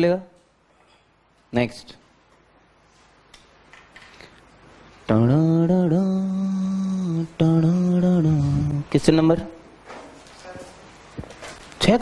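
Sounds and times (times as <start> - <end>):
man singing a long note: 5.1 - 8.9.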